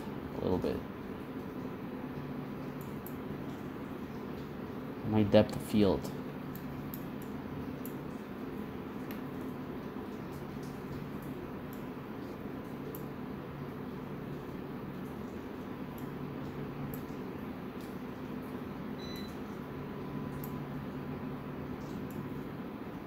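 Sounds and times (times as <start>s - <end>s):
computer fans humming: 0.0s - 23.0s.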